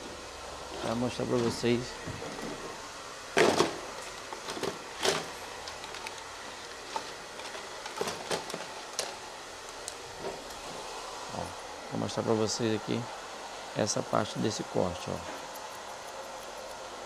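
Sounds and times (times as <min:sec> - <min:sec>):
room noise: 0:00.0 - 0:17.0.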